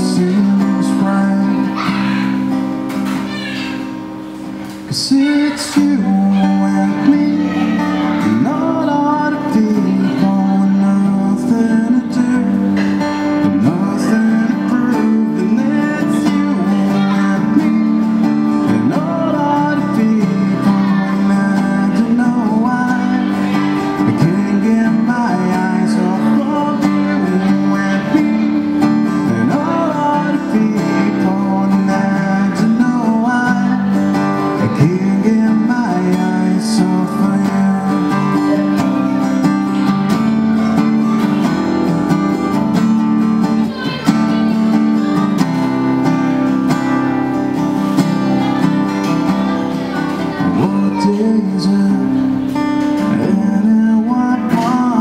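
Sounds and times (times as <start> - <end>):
man singing: 0.0 - 3.4, 4.8 - 55.0
strummed acoustic guitar: 0.0 - 55.0.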